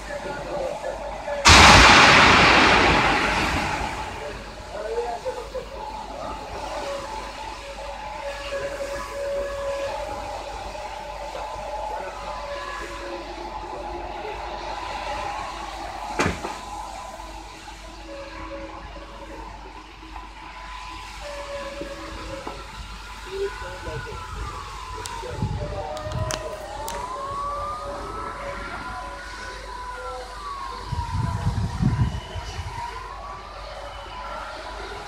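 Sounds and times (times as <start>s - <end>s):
outdoor background noise: 0.0s - 35.0s
sharp bang: 1.5s - 4.8s.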